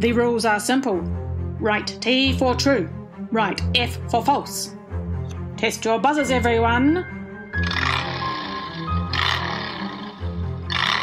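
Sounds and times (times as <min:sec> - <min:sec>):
looping backing music: 0:00.0 - 0:11.0.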